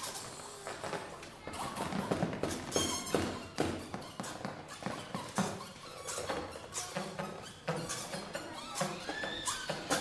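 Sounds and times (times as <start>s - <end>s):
pitched squeaks and chirps: 1.6s - 10.0s.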